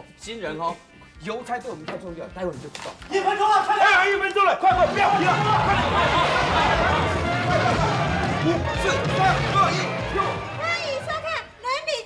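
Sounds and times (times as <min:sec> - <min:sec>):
bustle of voices: 0:04.7 - 0:11.2
high voice singing with music: 0:04.7 - 0:11.2.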